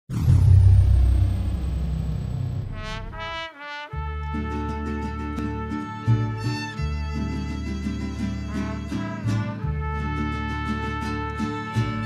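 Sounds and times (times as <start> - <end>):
mariachi band chord: 2.6 - 12.0
trumpet notes: 2.6 - 12.0.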